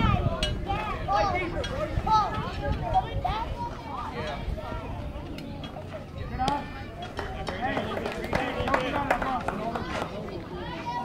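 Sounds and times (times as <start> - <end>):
many voices calling out: 0.0 - 11.0.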